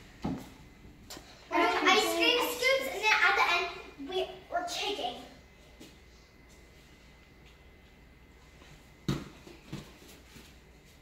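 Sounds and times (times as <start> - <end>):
light footfalls: 8.7 - 11.0
bare feet thudding on mat: 9.0 - 10.5.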